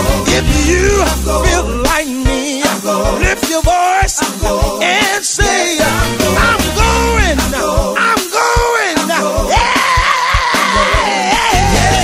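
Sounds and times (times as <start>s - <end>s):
bass: 0.0s - 3.8s, 4.4s - 8.0s, 9.4s - 12.0s
steady drum beat: 0.0s - 12.0s.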